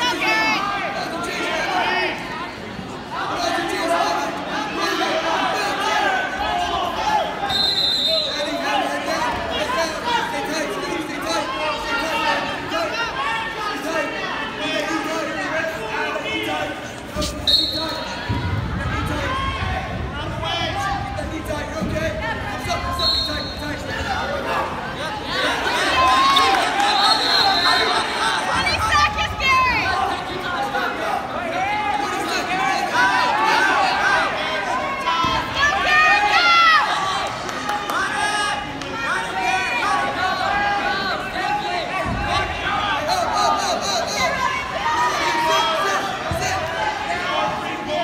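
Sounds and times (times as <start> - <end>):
spectators chattering in gym: 0.0 - 48.0.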